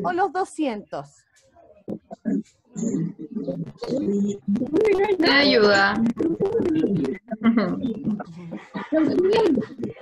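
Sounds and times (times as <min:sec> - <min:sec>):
indistinct voices on video call: 0:00.0 - 0:10.0.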